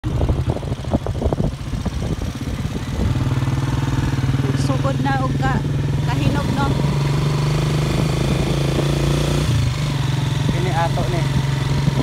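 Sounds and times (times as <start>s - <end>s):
small engine idling: 0.0s - 8.4s.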